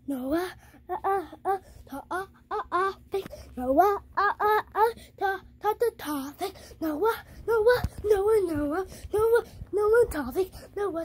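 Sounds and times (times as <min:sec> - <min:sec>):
child wailing sing-song chant: 0:00.0 - 0:11.0.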